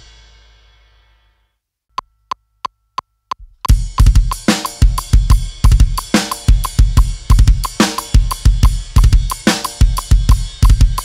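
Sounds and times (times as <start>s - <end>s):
bass drum: 3.4s - 11.0s
snare drum: 3.7s - 11.0s.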